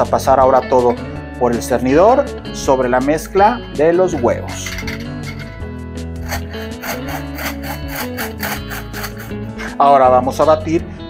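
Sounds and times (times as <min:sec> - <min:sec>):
background music: 0:00.0 - 0:11.0
hand-crank flour sifter rasping: 0:06.3 - 0:09.4.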